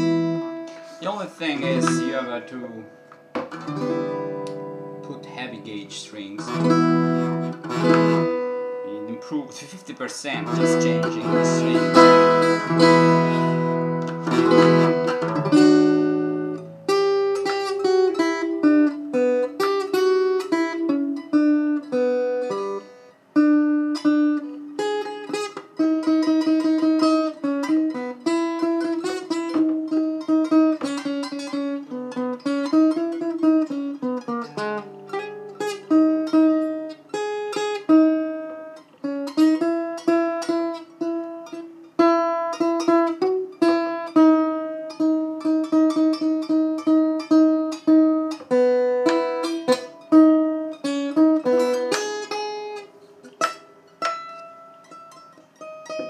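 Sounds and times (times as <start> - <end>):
acoustic guitar strummed chord: 0.0 - 9.5, 10.4 - 24.5
plucked acoustic guitar melody: 0.0 - 56.0.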